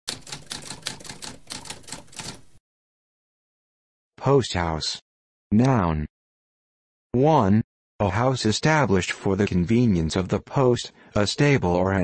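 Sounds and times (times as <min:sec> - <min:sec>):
typewriter keys clacking: 0:00.1 - 0:02.5.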